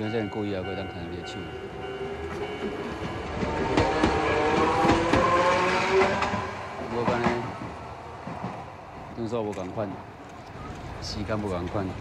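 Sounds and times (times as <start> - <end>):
train passing: 0.0 - 12.0
wheels clattering on rails: 0.6 - 12.0.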